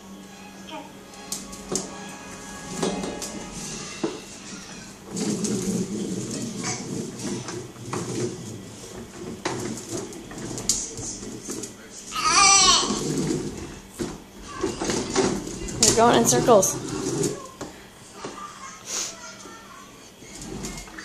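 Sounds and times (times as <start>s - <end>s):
faint music: 0.0s - 21.0s
plastic toy wheels rattling on tile: 14.5s - 17.6s.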